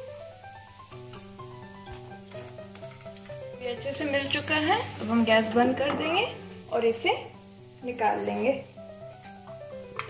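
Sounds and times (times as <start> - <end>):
background music: 0.0 - 10.0
light sizzle from pan: 0.0 - 10.0.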